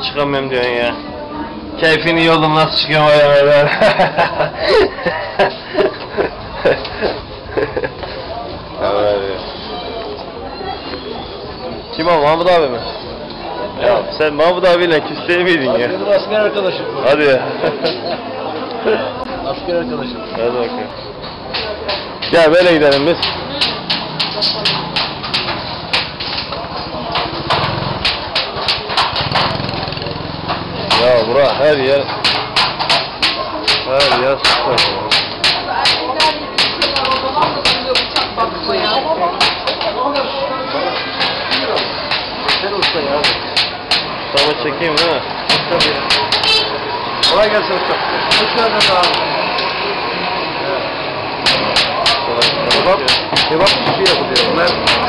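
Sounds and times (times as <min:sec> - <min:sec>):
busy background murmur: 0:00.0 - 0:55.0
market street chatter: 0:00.0 - 0:55.0
hammer striking metal on anvil: 0:32.1 - 0:38.1, 0:51.4 - 0:55.0.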